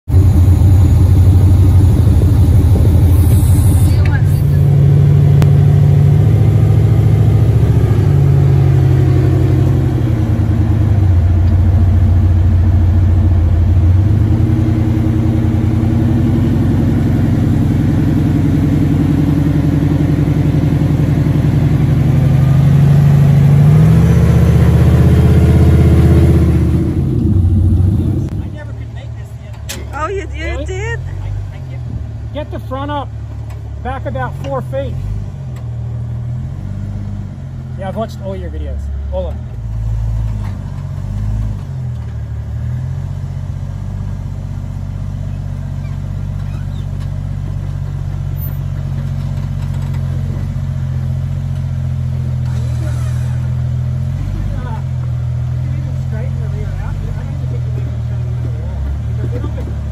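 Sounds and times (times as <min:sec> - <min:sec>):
engine revving: 0:00.0 - 0:29.0, 0:29.7 - 0:59.9
people's voices: 0:28.0 - 0:33.1.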